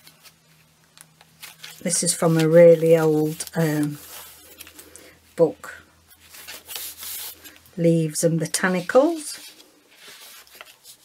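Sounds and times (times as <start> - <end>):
paper pages rustling: 0.0 - 5.0, 6.1 - 7.7, 8.7 - 11.0.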